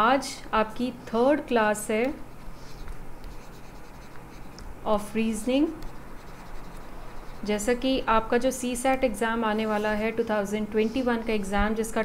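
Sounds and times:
stylus scratching on tablet: 0:01.6 - 0:11.4.

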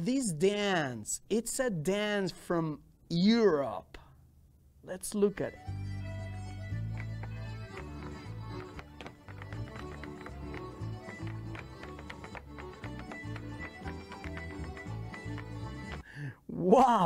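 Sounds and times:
traditional dance music: 0:05.5 - 0:16.1
dancers' steps tapping on stage: 0:06.7 - 0:16.0.

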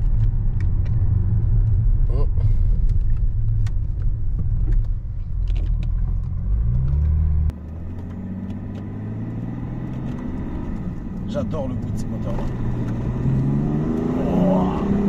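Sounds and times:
diesel engine revving: 0:00.0 - 0:15.0
engine note rising as car accelerates: 0:00.0 - 0:15.0.

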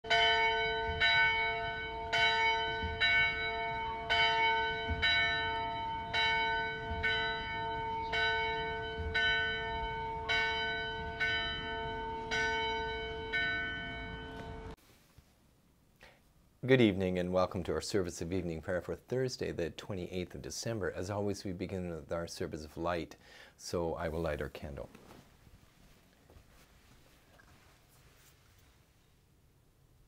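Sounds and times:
church bell tolling: 0:00.0 - 0:14.8.

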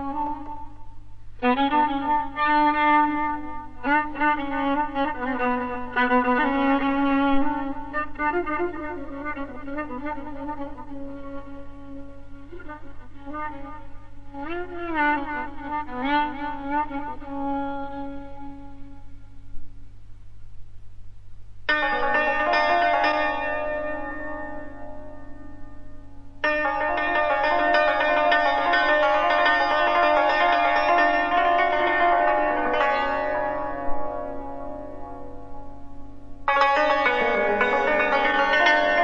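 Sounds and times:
steady low hum: 0:00.0 - 0:39.0
violin playing bowed notes: 0:01.4 - 0:18.6, 0:21.7 - 0:25.4, 0:26.4 - 0:35.4, 0:36.5 - 0:39.0.

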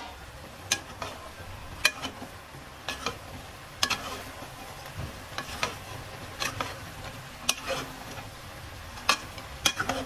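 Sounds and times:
frying sizzle: 0:00.0 - 0:10.0
metal ladle scraping a pot: 0:00.0 - 0:10.0.

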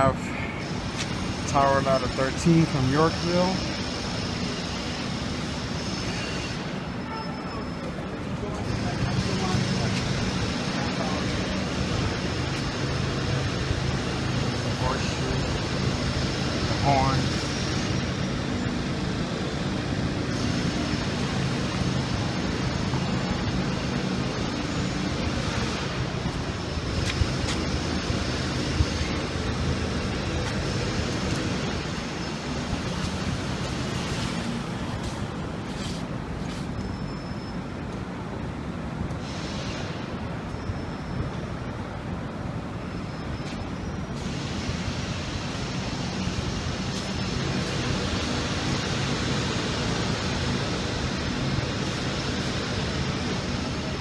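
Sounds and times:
street traffic engine hum: 0:00.0 - 0:54.0
faint voices: 0:07.0 - 0:12.2.

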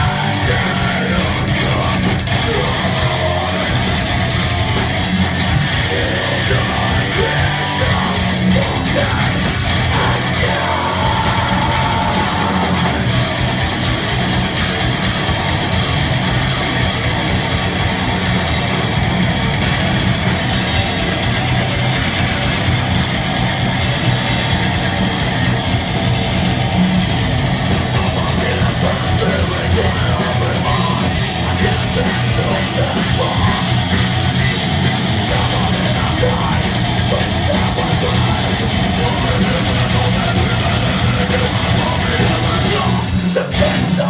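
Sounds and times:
harsh vocals: 0:00.0 - 0:44.0
metal band playing live: 0:00.0 - 0:44.0.

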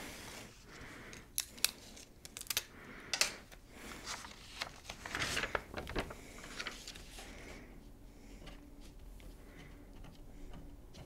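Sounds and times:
crisp paper clicks and snaps: 0:01.1 - 0:03.4, 0:04.1 - 0:07.1
paper sheets shuffled: 0:03.8 - 0:09.0.

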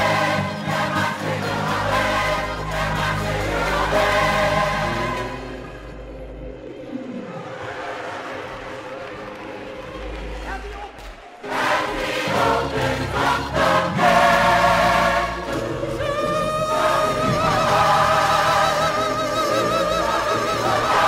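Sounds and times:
gospel choir singing: 0:00.0 - 0:06.3, 0:11.4 - 0:21.0.

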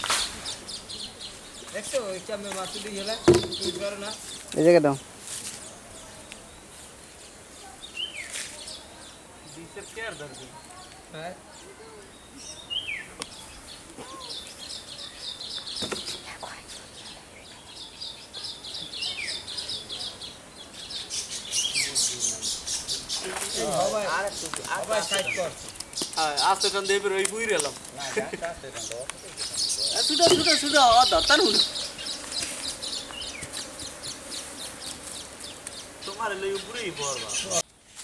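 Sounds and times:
small birds chirping: 0:00.0 - 0:37.7
faint steady buzz: 0:29.9 - 0:37.6.

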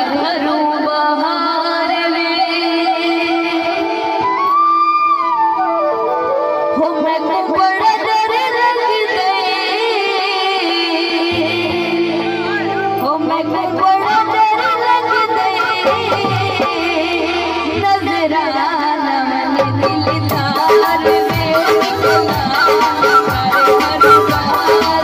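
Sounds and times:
harmonium: 0:00.0 - 0:25.0
bamboo flute: 0:02.6 - 0:07.3, 0:21.6 - 0:25.0
person singing: 0:06.8 - 0:25.0
drums: 0:15.5 - 0:18.3, 0:19.4 - 0:25.0.

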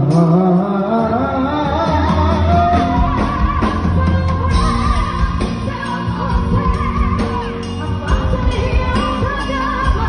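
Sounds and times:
band playing with steady beat: 0:00.0 - 0:10.0
woman singing into a microphone: 0:00.0 - 0:10.0.

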